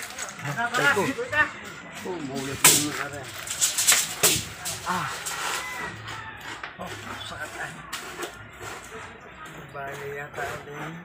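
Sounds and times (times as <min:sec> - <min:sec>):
people talking: 0:00.0 - 0:03.4, 0:04.0 - 0:05.8, 0:06.8 - 0:11.0.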